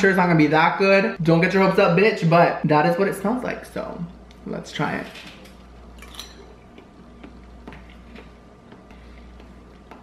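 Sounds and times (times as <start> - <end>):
low steady hum: 0.0 - 10.0
person chewing: 5.7 - 10.0.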